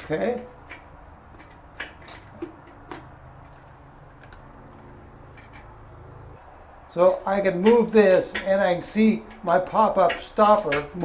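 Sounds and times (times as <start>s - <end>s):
metal clicks and taps: 0.0s - 5.7s.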